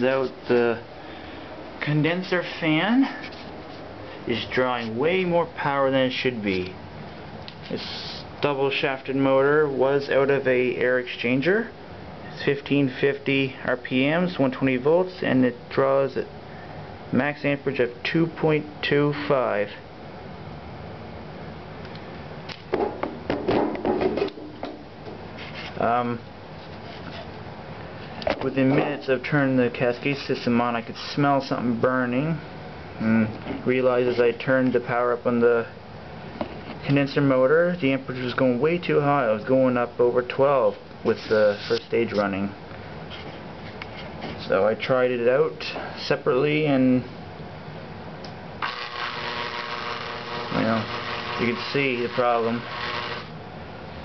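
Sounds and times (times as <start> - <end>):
low room hum: 0.0 - 54.0
fan motor humming: 47.6 - 54.0.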